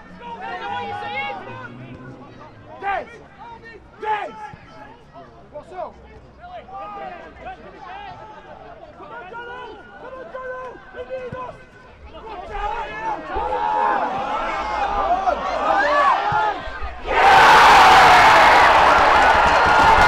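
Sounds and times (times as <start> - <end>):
voices shouting: 12.5 - 20.0
crowd cheering loudly: 13.1 - 20.0.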